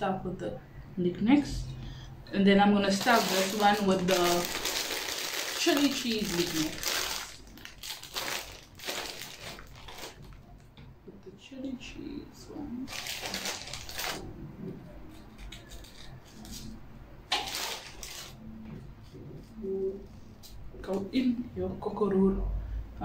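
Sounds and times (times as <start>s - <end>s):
foil snack packet rustling: 2.9s - 10.4s, 12.9s - 14.2s, 17.3s - 18.4s.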